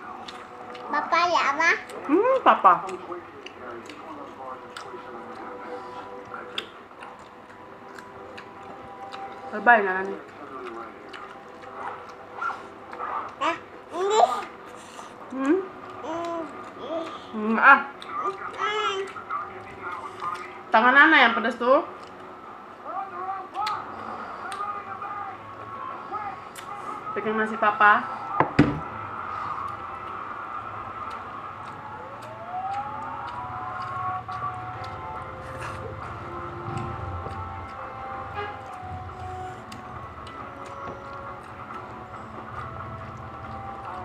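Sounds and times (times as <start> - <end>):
person chewing food: 0.0 - 1.1, 1.8 - 17.3, 17.9 - 20.6, 21.9 - 22.4, 30.9 - 44.0.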